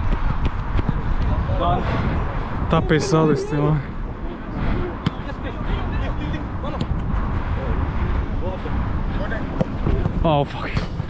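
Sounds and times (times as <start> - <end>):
wind rumbling on microphone: 0.0 - 11.0
distant players shouting: 1.3 - 6.6.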